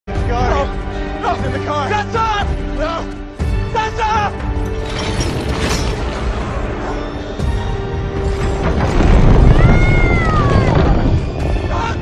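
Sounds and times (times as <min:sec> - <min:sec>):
trailer music: 0:00.1 - 0:12.0.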